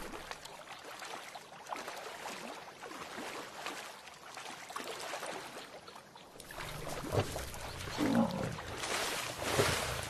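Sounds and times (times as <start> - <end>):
water splashing: 0.0 - 10.0
lion growling: 7.5 - 8.7.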